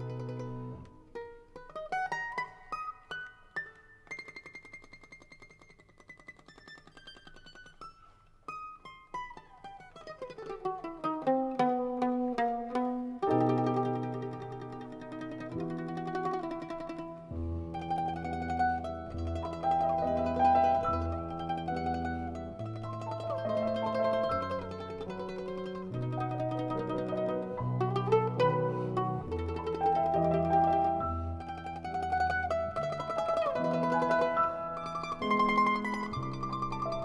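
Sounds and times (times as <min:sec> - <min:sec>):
mandolin plucked notes: 0:00.0 - 0:37.0
piano chords: 0:12.8 - 0:37.0.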